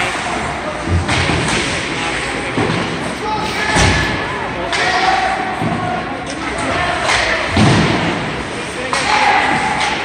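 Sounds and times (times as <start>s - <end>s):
voices and rink noise: 0.0s - 10.0s
stick hitting puck: 8.8s - 10.0s.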